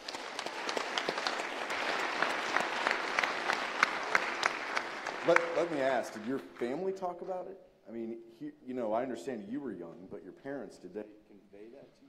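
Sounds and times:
large audience applauding: 0.0s - 7.0s.

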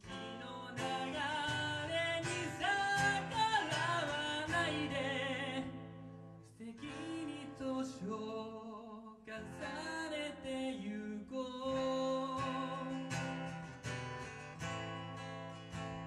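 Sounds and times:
man singing: 0.0s - 13.4s
strummed acoustic guitar: 0.0s - 16.0s.

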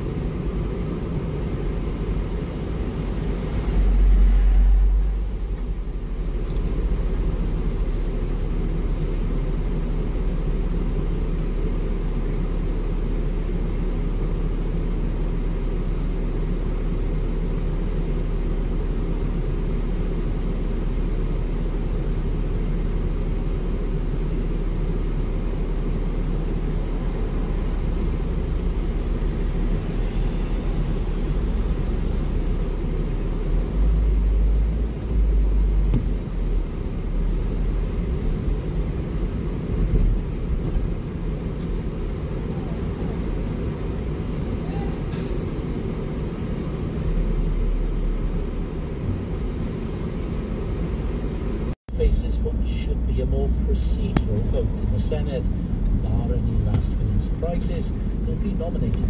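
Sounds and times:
car engine rumble: 0.0s - 59.0s.

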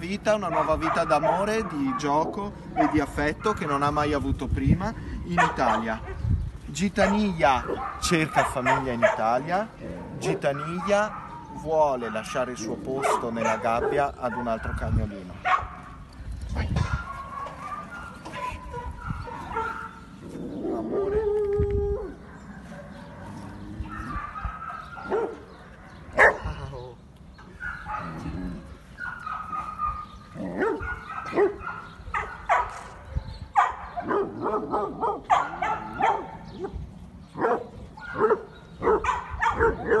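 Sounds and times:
dogs barking and yipping: 0.0s - 4.0s, 5.0s - 40.0s.

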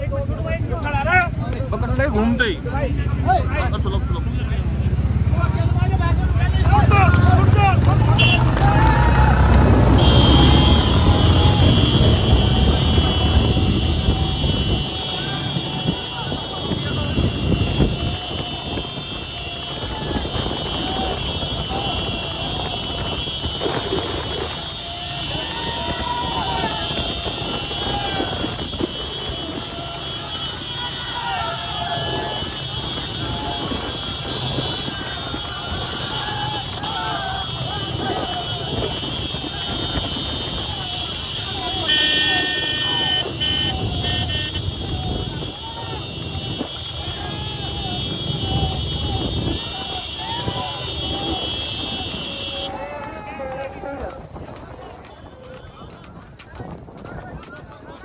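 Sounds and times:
cart wheels rumbling on paved road: 0.0s - 58.0s
men shouting: 5.7s - 55.6s.

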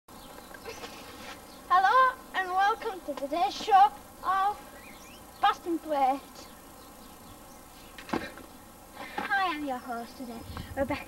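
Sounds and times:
background hiss: 0.1s - 11.0s.

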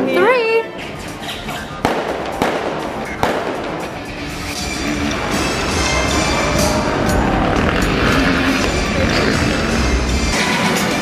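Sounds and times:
music over outdoor loudspeakers: 0.0s - 11.0s
sharp bangs: 1.8s - 4.6s.

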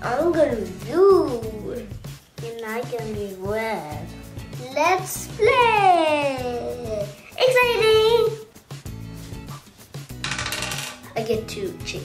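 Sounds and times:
background music: 0.0s - 12.0s
die clattering on marble: 10.2s - 11.2s.

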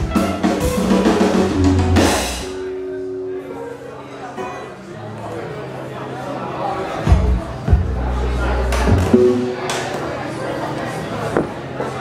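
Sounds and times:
live rock band: 0.0s - 2.6s
drum and cymbal hits: 0.0s - 2.7s
low bass note: 8.9s - 9.8s.

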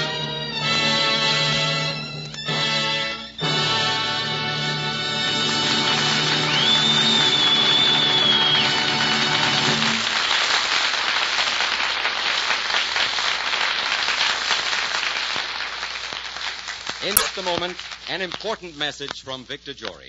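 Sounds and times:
studio audience applause: 5.2s - 18.6s.

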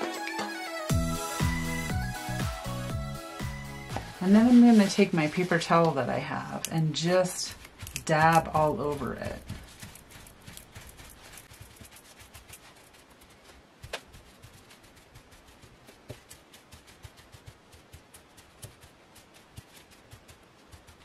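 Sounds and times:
paper towel patting paper: 3.9s - 21.0s.

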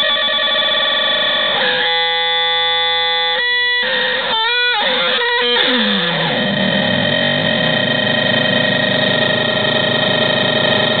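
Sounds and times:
synthesizer drone: 0.0s - 11.0s
gritty noise: 4.9s - 11.0s.

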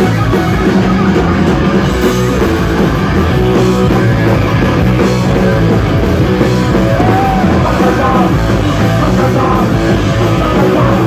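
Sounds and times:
distorted electric guitar: 0.0s - 11.0s
drum kit: 0.0s - 11.0s
punk rock band playing: 0.0s - 11.0s.

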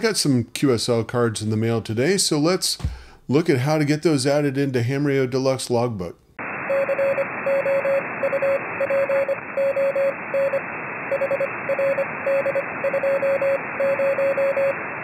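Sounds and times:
radio static hiss: 6.4s - 15.0s
morse code beeps: 6.7s - 14.8s.

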